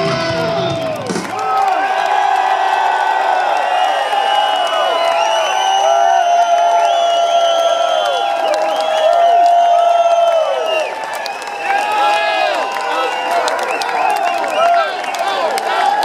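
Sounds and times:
crowd cheering and whooping: 0.0 - 16.0.

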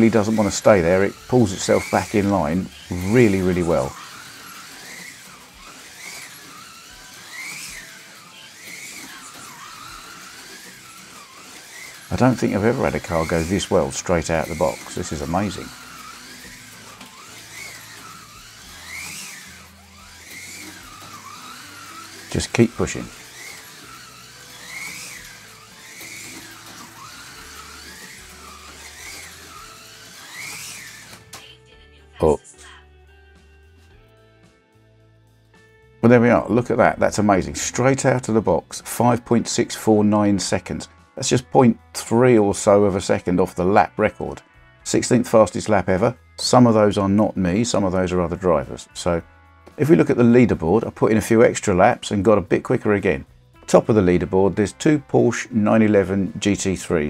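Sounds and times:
tyres hissing in slot: 0.0 - 31.5
slot car motor whining: 0.0 - 57.0.

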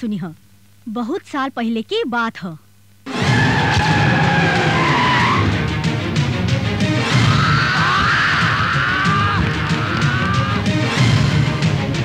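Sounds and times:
car tyres screeching: 3.1 - 6.0
background music: 3.1 - 12.0.

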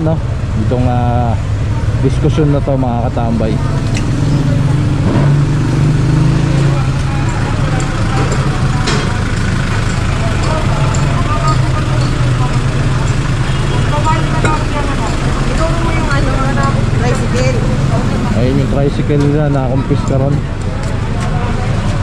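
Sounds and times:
people talking: 0.0 - 5.0, 6.4 - 22.0
vehicle engine idling: 0.0 - 22.0.

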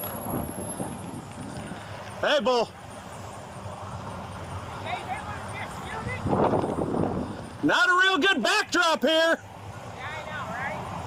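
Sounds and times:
low outdoor rumble: 0.0 - 11.0
man calling out: 7.6 - 9.4.

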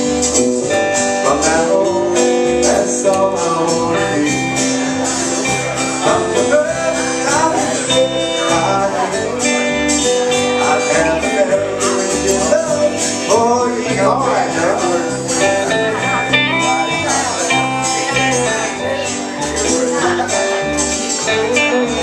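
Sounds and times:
country band playing: 0.0 - 22.0.

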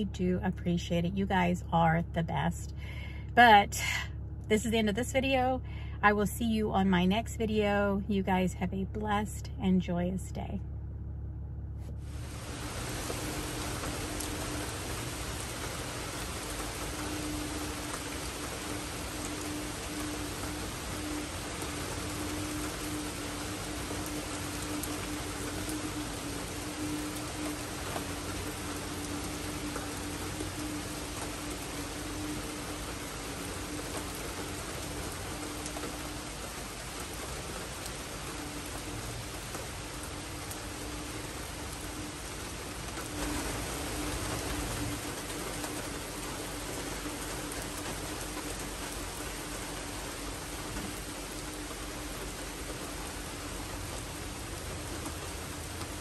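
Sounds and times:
rain falling: 0.0 - 1.9, 10.7 - 56.0
low hum: 0.0 - 56.0.

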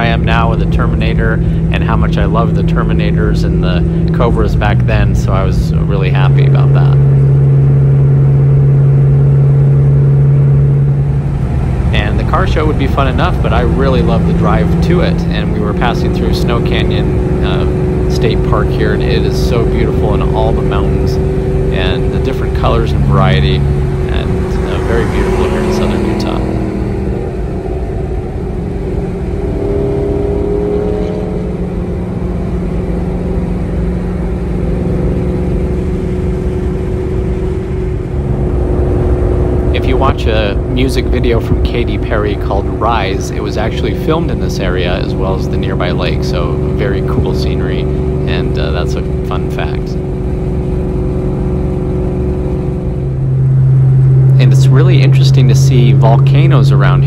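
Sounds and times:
man talking: 0.0 - 7.2, 11.9 - 26.5, 39.6 - 50.0, 54.4 - 57.0
car engine drone in cabin: 0.0 - 57.0
held tone: 0.0 - 57.0
road noise: 0.0 - 57.0.

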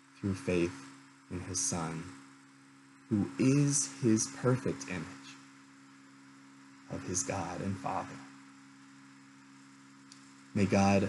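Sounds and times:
faint electrical hum: 0.0 - 11.0
low hiss: 0.0 - 11.0.

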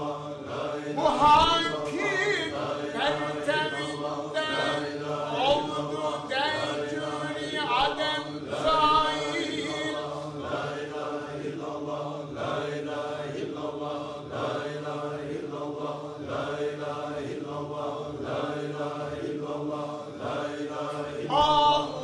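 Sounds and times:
group chanting in pulsing rhythm: 0.0 - 22.0.

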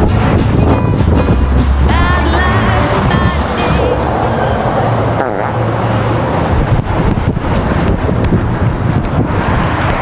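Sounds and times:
passing cars roar: 0.0 - 10.0
wind buffeting microphone: 0.0 - 10.0.

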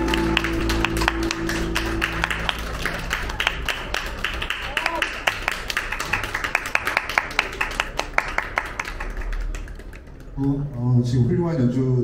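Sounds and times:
small audience applauding: 0.0 - 10.7.

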